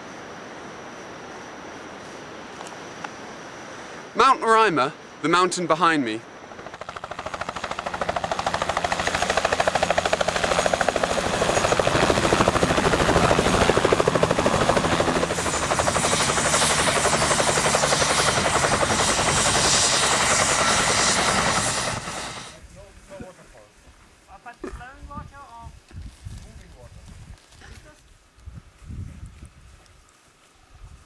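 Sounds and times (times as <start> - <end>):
high turbine whine: 3.2 - 22.9
helicopter rotor beating: 6.4 - 22.6.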